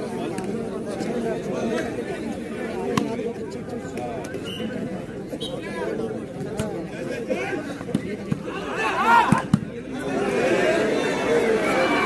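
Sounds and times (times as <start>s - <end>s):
overlapping voices chattering: 0.0s - 12.0s.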